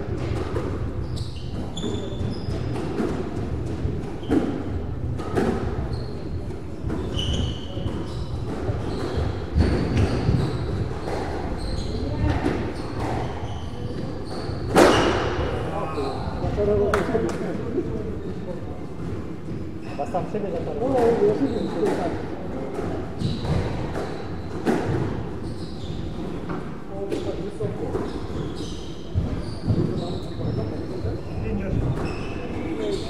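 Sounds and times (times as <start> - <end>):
squash ball hitting rackets and walls: 0.0 - 15.5, 20.8 - 30.5
shoes squeaking on court floor: 0.2 - 17.3, 19.4 - 22.2, 23.1 - 33.0.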